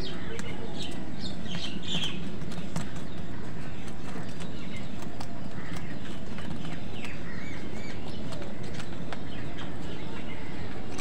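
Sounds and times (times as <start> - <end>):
beaks pecking plastic bowl: 0.0 - 11.0
high bird calls: 0.0 - 11.0.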